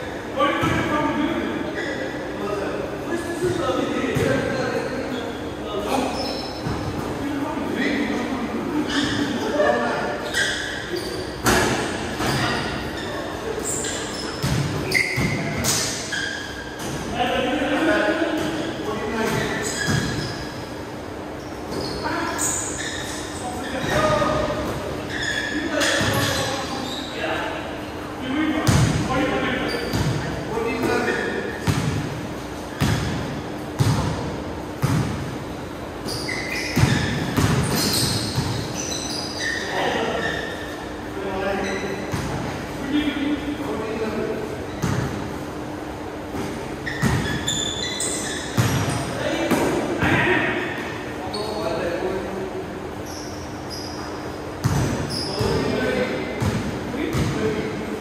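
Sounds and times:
basketball bouncing on court floor: 0:03.5 - 0:04.4, 0:13.8 - 0:17.1, 0:18.3 - 0:20.4, 0:28.6 - 0:29.1, 0:29.7 - 0:32.2, 0:32.8 - 0:35.3, 0:36.0 - 0:39.5, 0:42.0 - 0:42.4, 0:44.7 - 0:45.2, 0:46.4 - 0:50.2, 0:54.6 - 0:55.7, 0:56.3 - 0:57.4.

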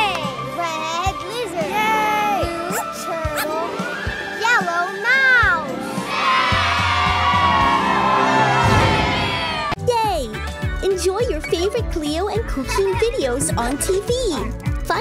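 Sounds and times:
cartoon music: 0:02.4 - 0:03.7.

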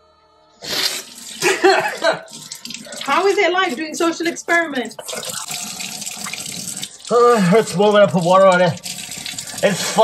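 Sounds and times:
faucet running into steel sink: 0:01.0 - 0:10.0.

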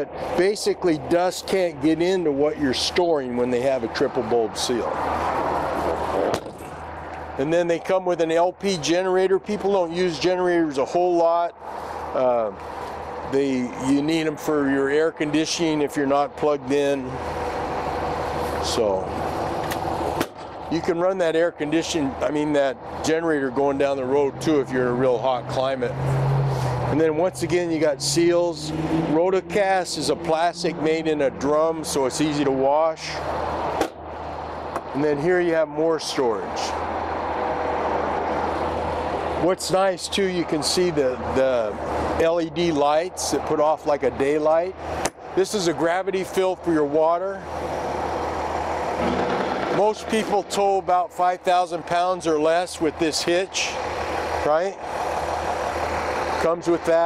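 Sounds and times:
rushing noise: 0:04.7 - 0:07.5, 0:47.5 - 0:50.6.

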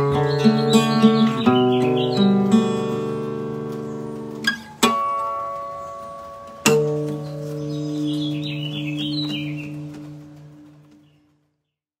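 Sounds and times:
acoustic guitar chord ringing: 0:00.0 - 0:11.0
bird chirping: 0:00.0 - 0:11.8.

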